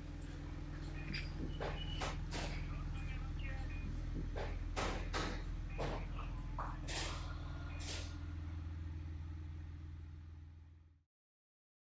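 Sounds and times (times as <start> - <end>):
car engine idling: 0.0 - 10.9.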